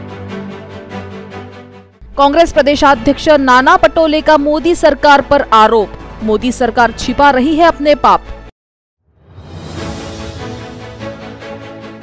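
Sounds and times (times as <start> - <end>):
news theme music: 0.0 - 8.5, 9.1 - 12.0.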